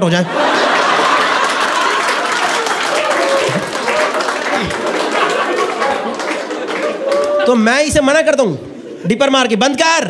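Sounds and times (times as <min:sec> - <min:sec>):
audience applauding: 0:00.3 - 0:07.9.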